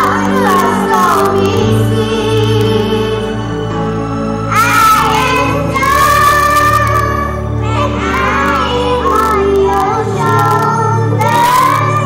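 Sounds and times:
children singing: 0.0s - 3.6s, 4.5s - 12.0s
instrumental backing music: 0.0s - 12.0s.

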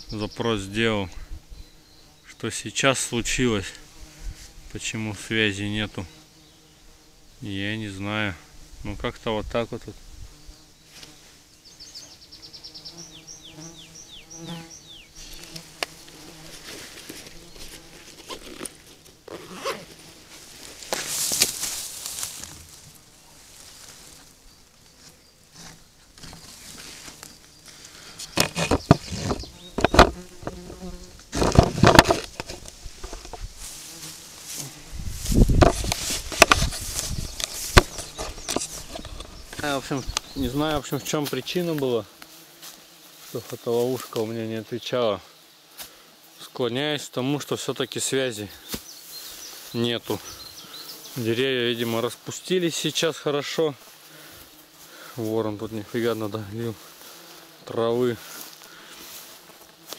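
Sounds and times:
insects buzzing: 0.0s - 59.9s
camera being handled: 17.0s - 19.2s, 28.2s - 30.8s, 31.4s - 33.4s, 35.6s - 39.6s.

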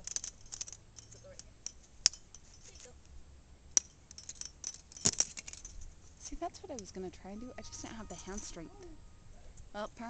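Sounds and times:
metal carabiners clinking: 0.0s - 3.1s, 3.7s - 9.0s.

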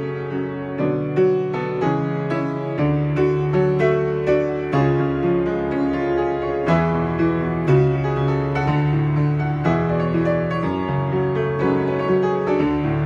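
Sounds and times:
solo piano playing pop song: 0.0s - 13.0s.

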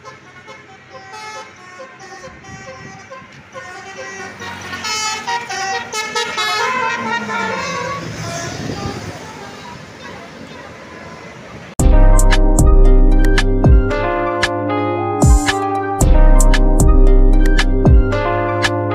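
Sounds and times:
musical air horn melody: 0.0s - 9.7s, 11.8s - 18.9s.

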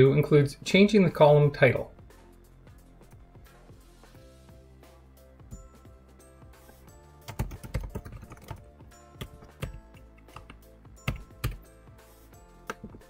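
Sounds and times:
typing on computer keyboard: 7.2s - 8.6s, 9.2s - 11.6s.

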